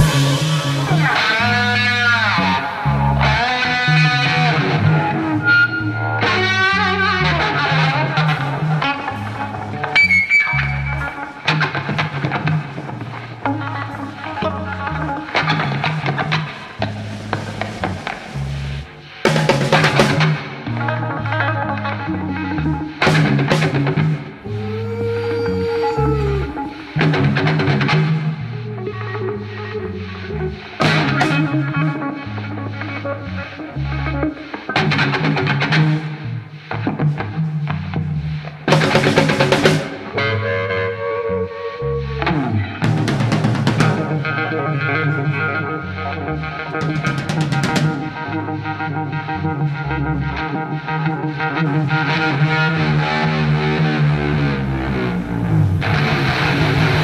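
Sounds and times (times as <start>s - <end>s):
drum kit with fills: 0.0s - 2.0s, 16.3s - 20.5s, 38.7s - 40.1s
cymbal crashes: 0.0s - 3.0s
distorted electric guitar: 0.0s - 57.0s
electric bass: 0.0s - 57.0s.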